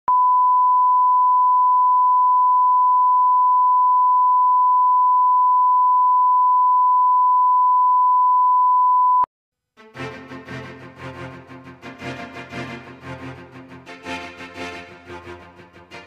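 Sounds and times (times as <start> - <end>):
steady test tone beep: 0.1 - 9.3.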